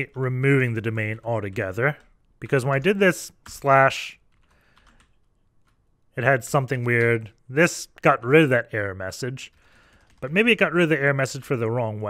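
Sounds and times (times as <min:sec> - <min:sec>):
faint keyboard typing: 0:00.0 - 0:08.4, 0:09.3 - 0:11.8.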